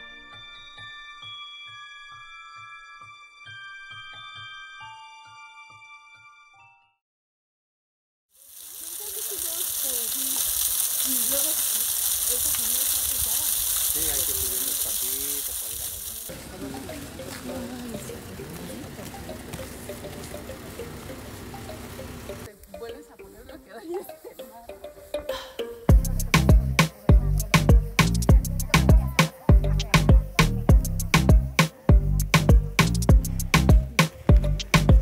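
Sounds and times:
steady hiss: 8.4s - 19.1s, 24.1s - 28.3s
people talking indistinctly: 11.0s - 35.0s.

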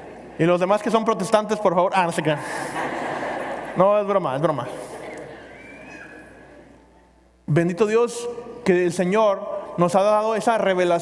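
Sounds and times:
congregation laughing: 2.3s - 6.8s.

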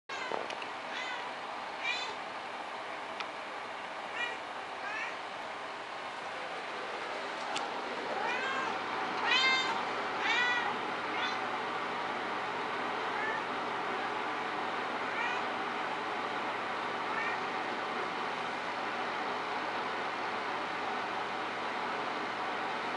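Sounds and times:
cats meowing: 0.1s - 2.2s, 4.1s - 5.2s, 8.2s - 11.4s, 15.1s - 15.5s.

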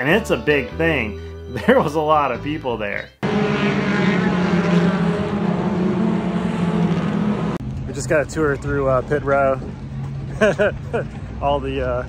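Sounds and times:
race car engines running hard: 3.2s - 12.0s.

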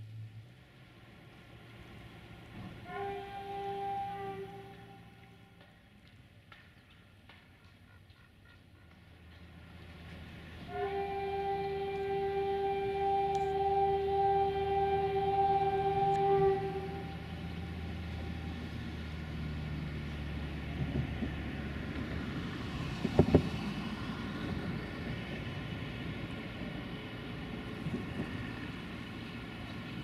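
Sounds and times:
locomotive engine drone: 0.0s - 30.0s
locomotive horn: 2.5s - 5.8s, 10.6s - 20.2s.

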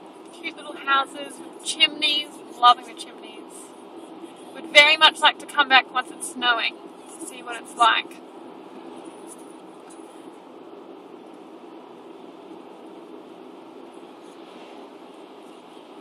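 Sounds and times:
car engine and tyre hum: 6.7s - 16.0s.

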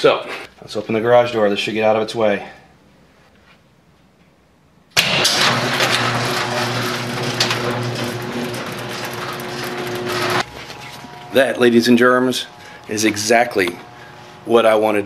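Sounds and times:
door rattling up tracks: 5.0s - 10.4s
garage door opener click: 5.0s - 11.5s
motor humming: 5.0s - 15.0s.

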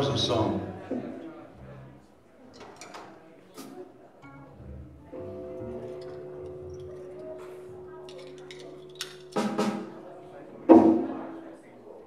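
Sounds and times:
rock band playing: 5.2s - 11.1s.

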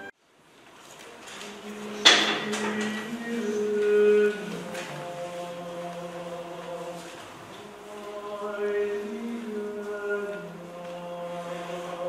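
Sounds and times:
choir singing held chords: 1.4s - 12.0s.

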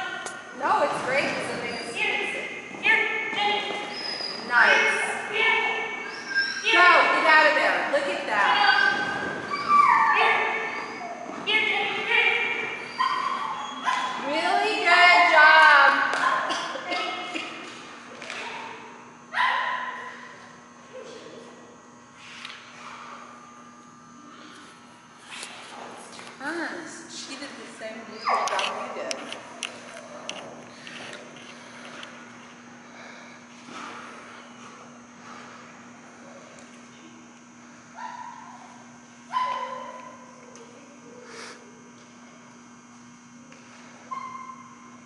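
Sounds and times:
dog yelping: 5.4s - 6.8s, 8.5s - 11.4s, 12.1s - 14.2s, 28.2s - 28.8s, 39.3s - 40.0s, 44.1s - 44.6s.

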